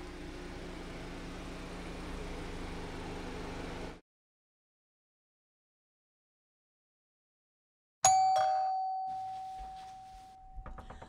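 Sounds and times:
doorbell chime: 8.0s - 10.9s.

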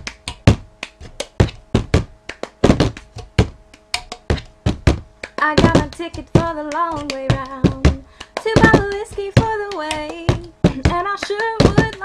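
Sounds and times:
hands clapping: 0.0s - 12.0s
cup knocking on tabletop: 1.8s - 5.0s.

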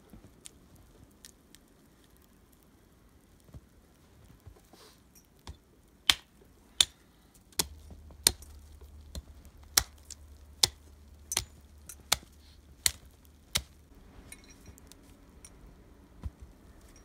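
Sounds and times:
hatchet chopping tree trunk: 9.1s - 13.8s.

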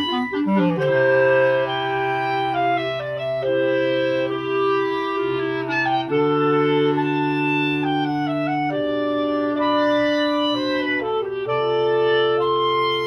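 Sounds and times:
clarinets playing sustained chords: 0.0s - 13.0s.

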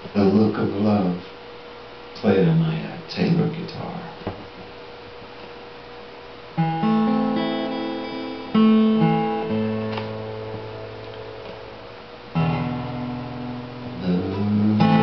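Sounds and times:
acoustic guitar chords: 6.5s - 15.0s.

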